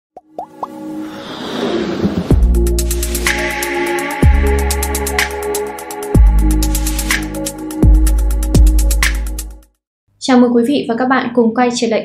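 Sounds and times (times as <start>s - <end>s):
quick rising blips: 0.2s - 3.6s
riser sound effect: 0.4s - 5.4s.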